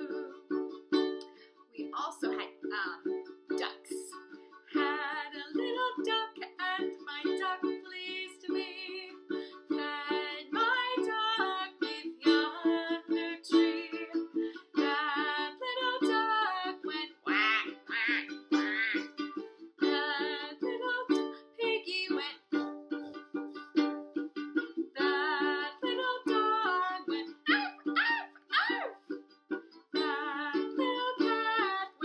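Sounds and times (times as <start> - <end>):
woman singing with vibrato: 0.0 - 0.4, 1.8 - 19.2, 19.8 - 22.4, 25.0 - 29.0, 30.0 - 32.0
ukulele strummed chords: 0.0 - 32.0.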